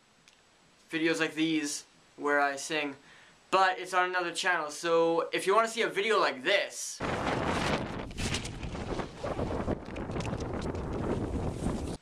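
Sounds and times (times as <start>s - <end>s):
wind buffeting microphone: 7.0s - 12.0s.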